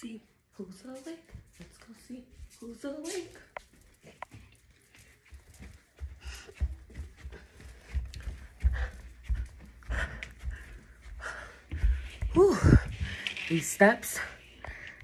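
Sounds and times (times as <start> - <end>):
heavy footfalls on stairs: 5.6 - 13.2
person panting: 6.0 - 13.5.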